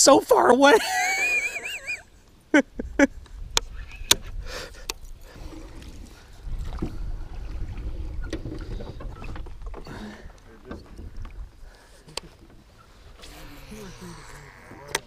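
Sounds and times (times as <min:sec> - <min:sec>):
wind: 0:00.0 - 0:15.0
low rumble of water: 0:02.8 - 0:14.9.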